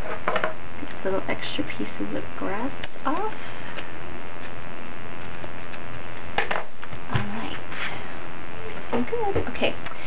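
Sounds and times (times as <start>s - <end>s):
steady electrical buzz: 0.0s - 10.0s.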